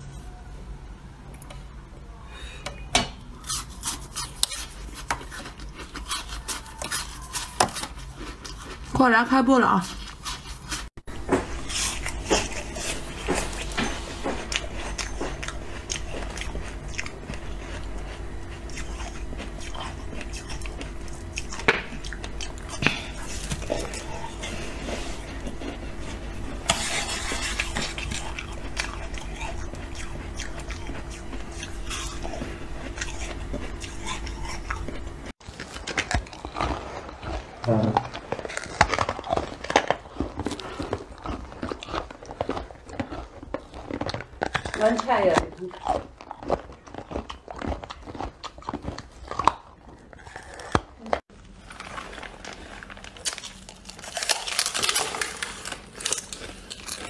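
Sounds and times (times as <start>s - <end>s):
steady electrical hum: 0.0s - 57.0s
teeth crunching ice: 3.4s - 10.9s, 25.6s - 57.0s.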